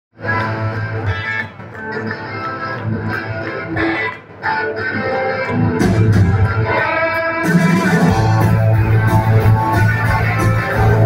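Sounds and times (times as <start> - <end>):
rock band playing live: 0.2 - 11.0.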